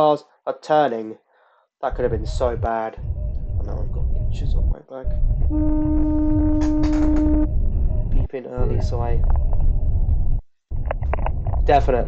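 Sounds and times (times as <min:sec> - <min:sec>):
road and engine rumble: 0:01.9 - 0:12.0
car horn long blast: 0:05.5 - 0:07.5.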